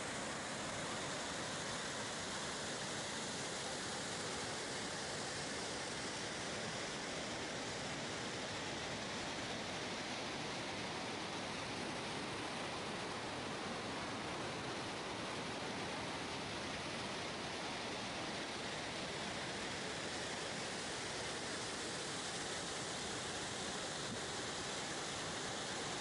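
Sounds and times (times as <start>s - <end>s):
waterfall rushing over rocks: 0.0s - 26.0s.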